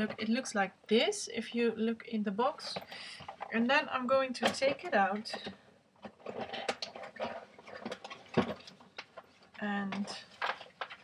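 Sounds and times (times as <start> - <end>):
packaging rustling: 6.1 - 11.0.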